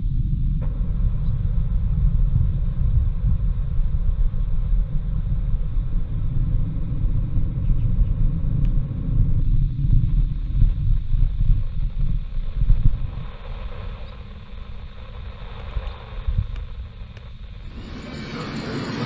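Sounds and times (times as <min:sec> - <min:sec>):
loud low rumble: 0:00.0 - 0:19.0
faint hiss: 0:09.2 - 0:19.0.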